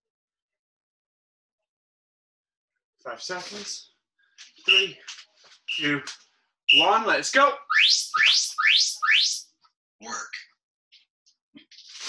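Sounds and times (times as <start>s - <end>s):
rising electronic chirps: 4.7s - 5.0s, 5.7s - 6.1s, 6.7s - 7.0s, 7.6s - 9.4s.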